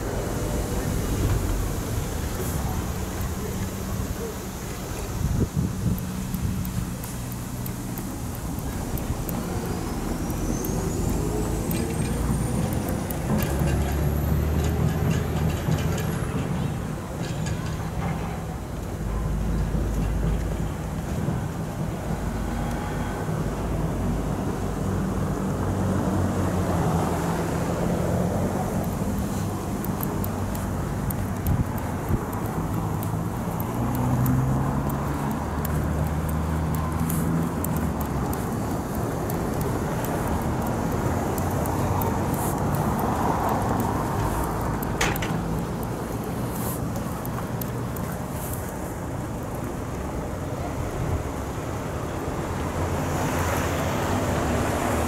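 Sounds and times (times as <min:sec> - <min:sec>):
wind on microphone: 0:00.0 - 0:13.4, 0:25.8 - 0:47.0
car traffic on snowy road: 0:00.0 - 0:55.0.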